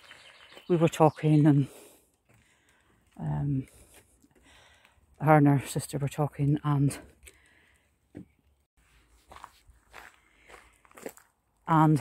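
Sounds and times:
faint footsteps: 0:08.1 - 0:11.4.

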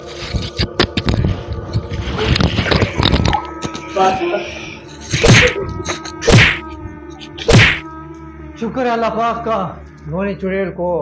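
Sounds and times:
background music with held tones: 0:00.0 - 0:11.0
heavy whacks on soft bundle: 0:05.2 - 0:05.6, 0:06.2 - 0:06.6, 0:07.5 - 0:07.8.

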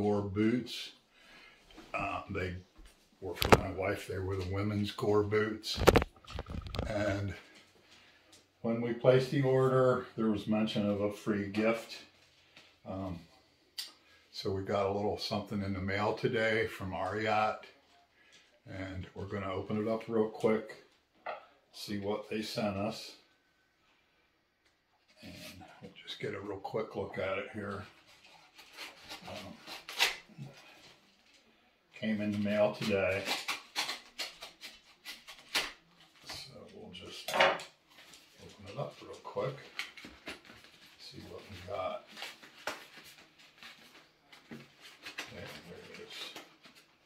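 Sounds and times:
paper envelope tearing: 0:28.0 - 0:30.8, 0:32.6 - 0:36.3.

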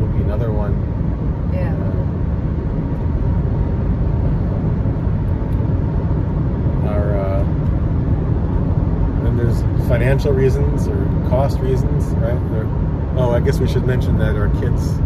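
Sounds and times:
car road and engine noise: 0:00.0 - 0:15.0.

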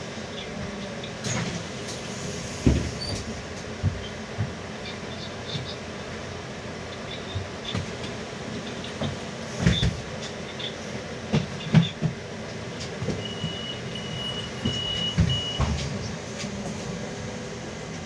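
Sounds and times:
bus running and road noise: 0:00.0 - 0:18.0
knocks and rattles from bumps: 0:09.0 - 0:10.4, 0:11.2 - 0:13.7, 0:14.6 - 0:16.1.

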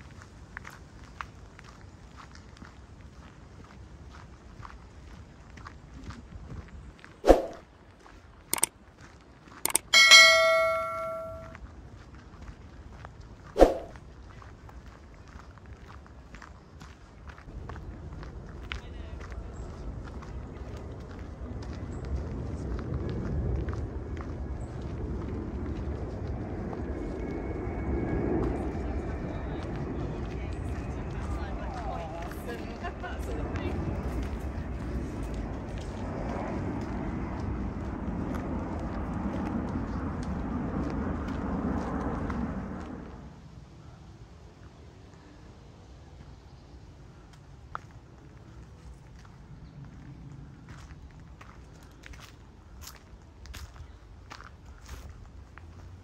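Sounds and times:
mouse clicks: 0:09.7 - 0:10.0
notification bell ding: 0:09.7 - 0:11.5
low outdoor rumble: 0:11.2 - 0:56.0
footsteps on dirt path: 0:28.4 - 0:43.0, 0:47.2 - 0:56.0.

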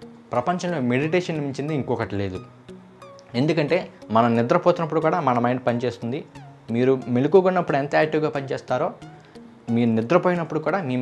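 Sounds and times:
faint background music: 0:00.0 - 0:11.0
man speaking: 0:03.3 - 0:09.0, 0:09.7 - 0:11.0.

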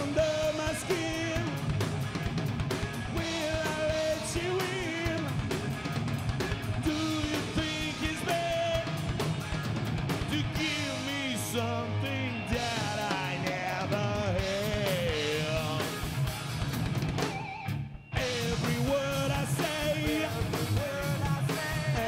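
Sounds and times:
man singing with vibrato: 0:00.0 - 0:01.6, 0:03.1 - 0:05.4, 0:06.8 - 0:09.1, 0:10.2 - 0:16.1, 0:18.1 - 0:22.0
bass guitar: 0:00.0 - 0:22.0
distorted electric guitar: 0:00.0 - 0:22.0
drum kit beating: 0:00.0 - 0:22.0.

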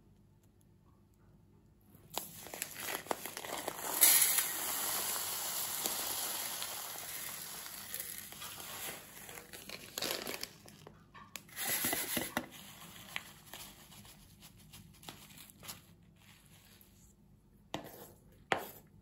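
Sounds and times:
breadcrumbs pouring onto metal tray: 0:02.1 - 0:10.6
plastic bag crinkling: 0:02.1 - 0:16.5.

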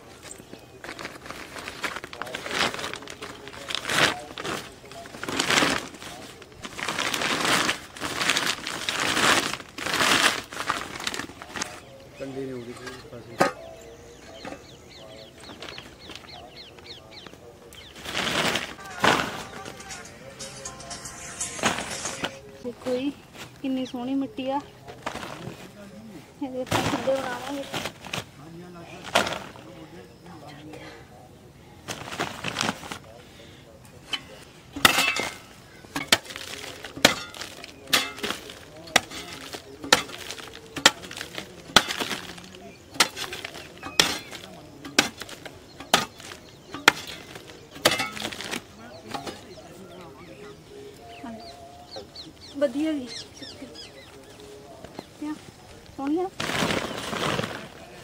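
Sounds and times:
woven plastic sack rustling: 0:00.0 - 0:13.7, 0:14.4 - 0:53.1, 0:54.1 - 0:58.0
soil clods being handled: 0:00.0 - 0:23.8, 0:24.5 - 0:29.9, 0:31.8 - 0:52.5, 0:54.2 - 0:58.0
hoe chopping into earth: 0:42.9 - 0:49.4.

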